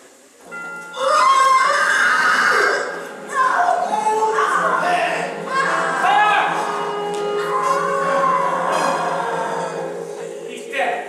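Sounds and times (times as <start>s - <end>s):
stage musical accompaniment: 0.0s - 11.0s
person singing: 1.0s - 10.5s.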